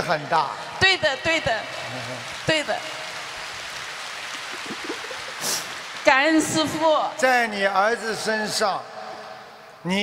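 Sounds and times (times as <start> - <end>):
microphone amplification hiss: 0.0 - 10.0
short breathy hiss: 5.4 - 5.8.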